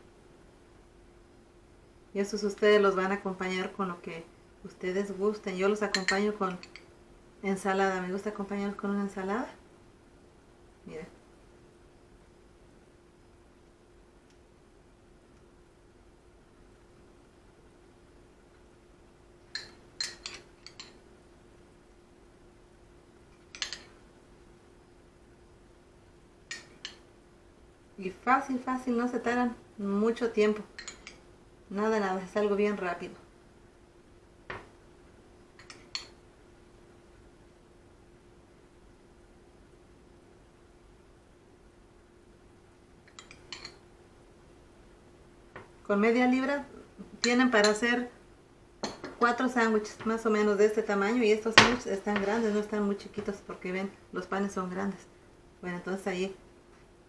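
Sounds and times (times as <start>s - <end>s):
metal spoon clinking on ceramic bowl: 5.9s - 6.9s, 19.5s - 21.0s, 30.8s - 31.2s, 43.1s - 43.8s.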